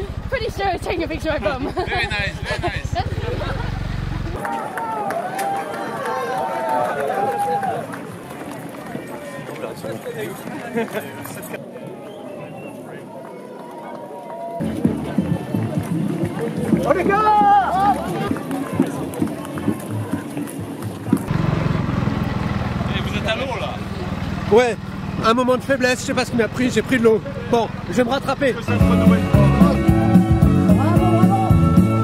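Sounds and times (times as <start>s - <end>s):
running footsteps on road: 0.0s - 28.0s
voices calling and talking: 0.0s - 32.0s.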